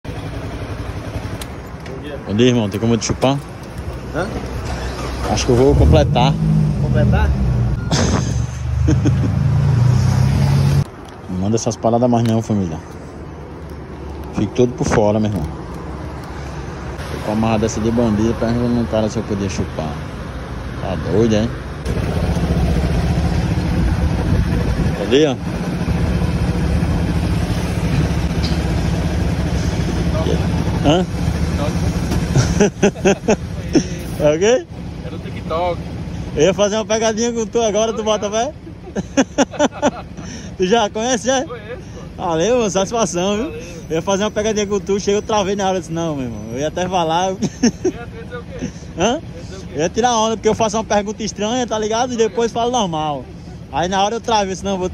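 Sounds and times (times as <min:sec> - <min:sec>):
motorcycle engine idling: 0:00.1 - 0:05.7, 0:21.8 - 0:54.9.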